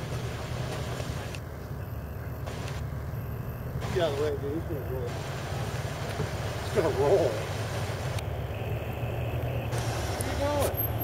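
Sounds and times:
engine low rumble: 0.0s - 11.0s.

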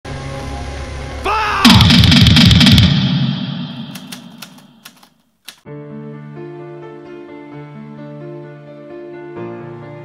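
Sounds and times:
single gunshots: 1.6s - 4.6s
rapid rifle fire: 1.7s - 4.8s
soft music: 5.6s - 10.0s.

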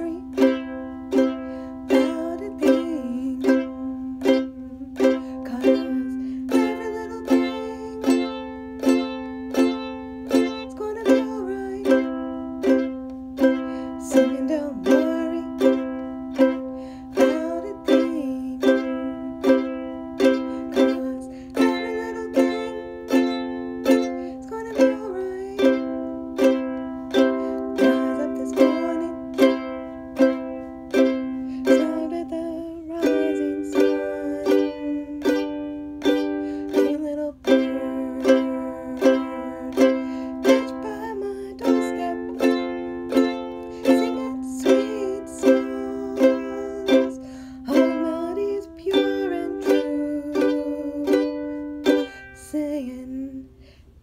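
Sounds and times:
ukulele strumming: 0.0s - 53.5s.

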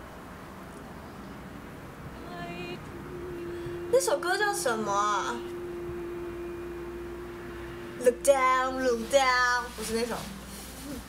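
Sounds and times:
steady hum: 0.0s - 11.0s
woman singing: 2.2s - 7.3s, 8.0s - 10.3s.

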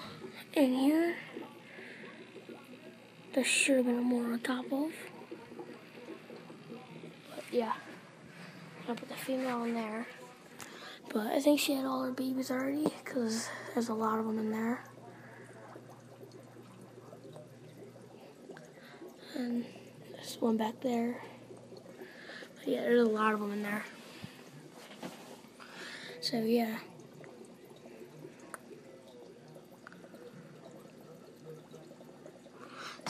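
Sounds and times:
low steady hum: 0.0s - 33.0s
water trickling and dripping: 0.0s - 33.0s.

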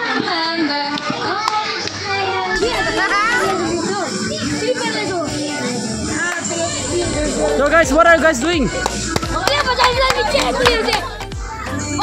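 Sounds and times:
children talking and laughing: 0.0s - 12.0s.

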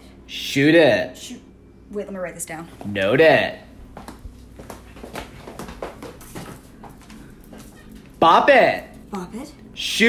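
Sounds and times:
light footsteps: 3.7s - 8.3s.

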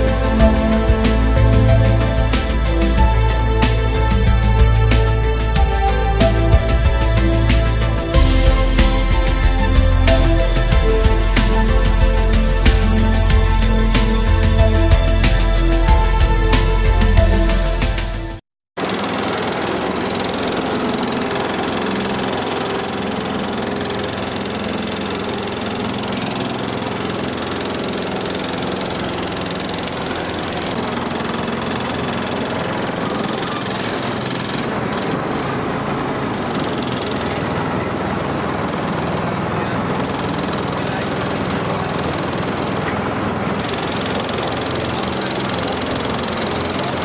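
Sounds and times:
boat engine running: 0.0s - 47.0s.

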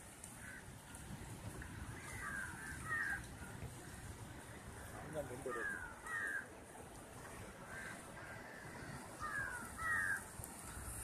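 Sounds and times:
birds calling: 1.6s - 6.7s, 7.5s - 11.0s.

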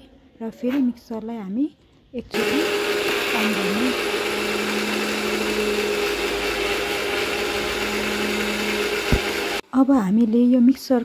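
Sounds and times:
mixer grinder motor hum: 2.3s - 9.6s.

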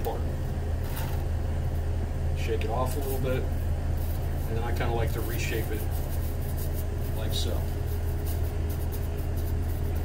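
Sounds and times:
kitchen equipment machine hum: 0.0s - 10.0s.

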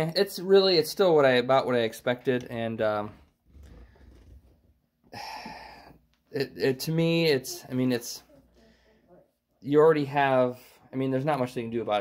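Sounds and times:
man breathing in: 5.1s - 6.0s.

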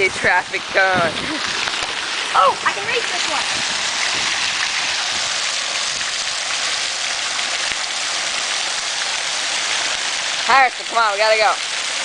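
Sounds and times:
water flowing through stone channel: 0.0s - 12.0s.

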